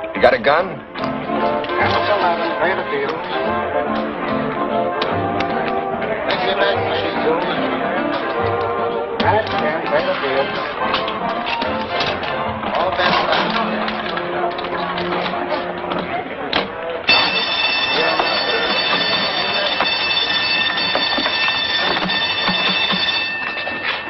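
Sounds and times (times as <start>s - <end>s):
slot machine reels clattering: 1.6s - 3.4s, 17.1s - 24.0s
steady high ringing tone: 17.1s - 24.0s.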